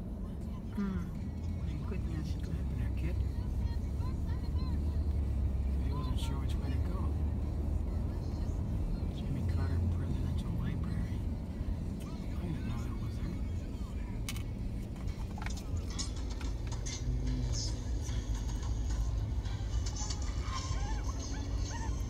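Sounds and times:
road and engine rumble in car: 0.0s - 22.0s.

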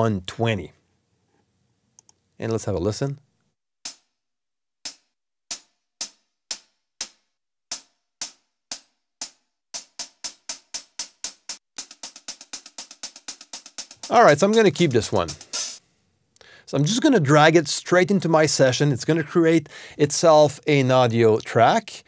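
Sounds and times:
hi-hat loop: 4.9s - 15.8s.

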